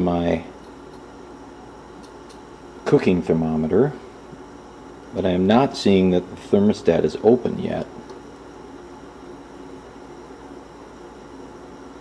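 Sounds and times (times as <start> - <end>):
man talking: 0.0 - 0.5, 2.8 - 4.0, 5.2 - 8.0.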